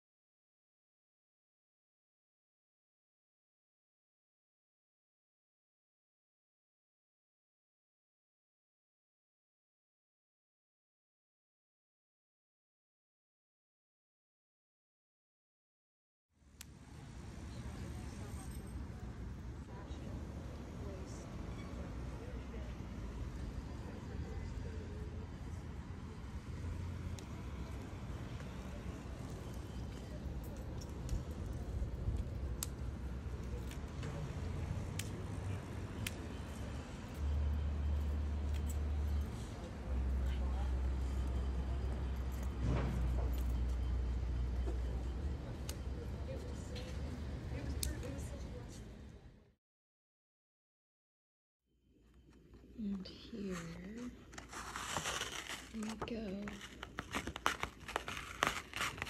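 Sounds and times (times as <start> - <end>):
road traffic rumble: 16.6 - 49.5, 52.6 - 59.0
plastic sheet crinkling: 53.5 - 59.0.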